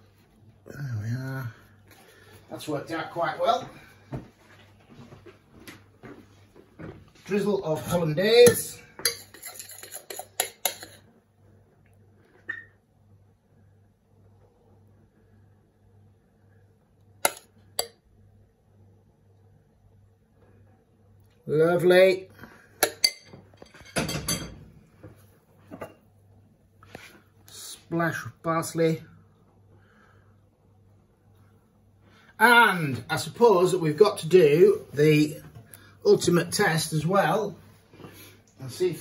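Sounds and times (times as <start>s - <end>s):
glassware clinking: 8.5s - 11.0s, 22.8s - 24.6s
metal spoon scraping glass bowl: 9.1s - 11.0s
crockery clattering: 22.8s - 24.7s.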